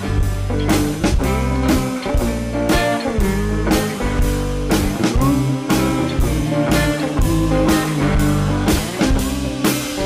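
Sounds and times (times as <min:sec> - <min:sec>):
bass notes: 0:00.0 - 0:10.0
drum and cymbal hits: 0:00.0 - 0:10.0
drum kit: 0:00.0 - 0:10.0
electric guitar: 0:00.0 - 0:10.0.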